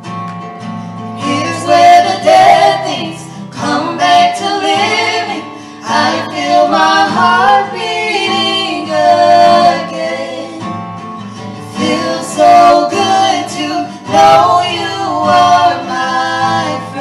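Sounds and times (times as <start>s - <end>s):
strummed acoustic guitar: 0.0s - 17.0s
women singing into microphones: 1.2s - 10.9s, 11.6s - 17.0s.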